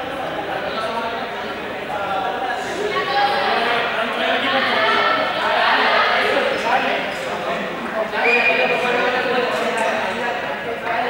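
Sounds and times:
young voices shouting and chattering: 0.0s - 11.0s.

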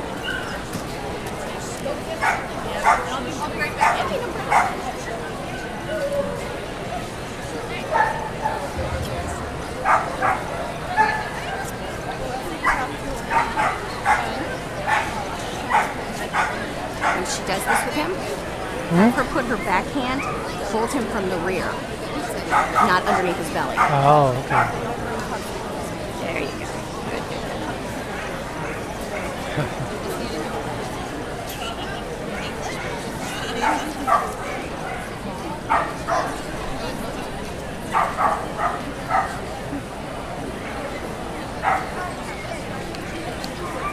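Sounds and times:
background hum of voices: 0.0s - 43.9s
hall murmur: 8.7s - 11.4s
dog barking: 22.5s - 24.8s, 35.7s - 36.3s, 38.0s - 39.4s, 41.6s - 42.1s.

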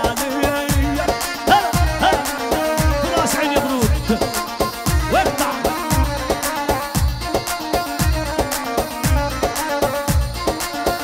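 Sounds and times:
drum beat: 0.0s - 11.0s
double-pipe reed pipe melody: 0.7s - 11.0s.

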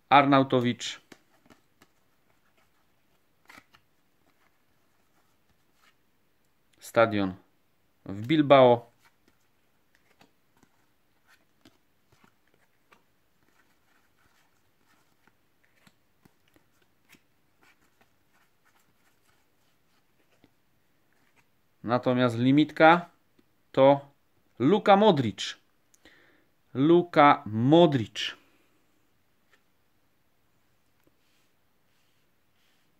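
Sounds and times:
trading cards rustling: 0.6s - 6.0s, 8.2s - 21.5s.

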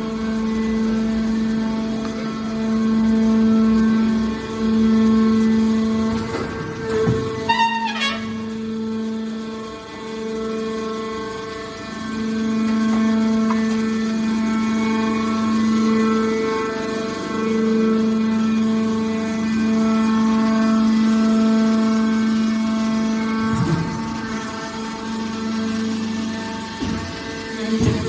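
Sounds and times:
hydraulic pump whine: 0.0s - 28.0s.

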